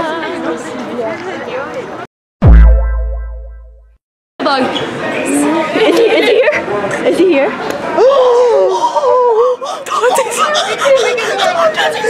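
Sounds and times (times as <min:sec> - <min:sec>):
group chatter: 0:00.0 - 0:02.1, 0:04.4 - 0:12.0
deep boom dropping in pitch: 0:02.4 - 0:04.0.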